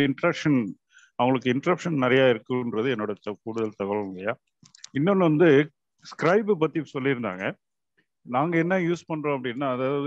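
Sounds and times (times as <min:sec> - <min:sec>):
man speaking over video call: 0:00.0 - 0:10.0.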